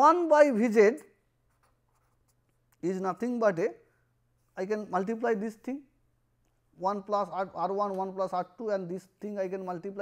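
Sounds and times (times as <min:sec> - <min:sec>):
man speaking: 0:00.0 - 0:01.2, 0:02.8 - 0:03.8, 0:04.5 - 0:06.0, 0:06.8 - 0:10.0.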